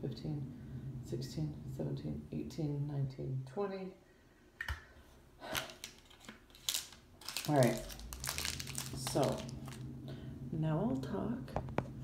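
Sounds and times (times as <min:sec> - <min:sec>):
paper and plastic rustling: 0:05.5 - 0:09.8.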